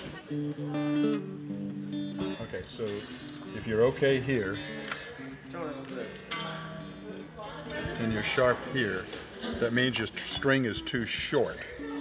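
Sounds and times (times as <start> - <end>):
guitar string plucked and ringing: 0.6 - 7.9.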